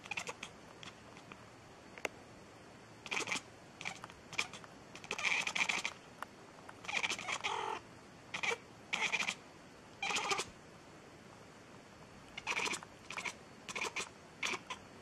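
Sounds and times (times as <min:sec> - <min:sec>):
cat meowing: 0:00.0 - 0:00.5, 0:03.1 - 0:06.0, 0:06.8 - 0:07.8, 0:08.4 - 0:09.4, 0:10.0 - 0:10.5, 0:12.4 - 0:14.8.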